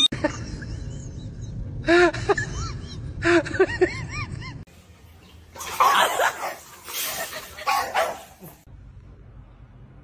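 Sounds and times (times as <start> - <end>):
dog barking: 5.6 - 6.8, 7.6 - 8.6.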